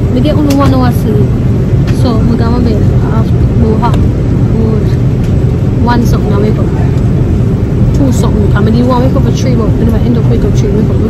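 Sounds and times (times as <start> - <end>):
airliner cabin rumble: 0.0 - 11.0
person talking: 0.1 - 1.3, 1.9 - 4.0.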